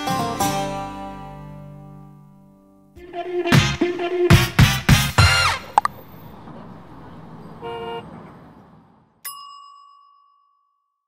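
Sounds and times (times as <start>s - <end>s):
background music: 0.0s - 5.9s
car horn toot: 5.2s - 5.9s, 7.6s - 8.2s.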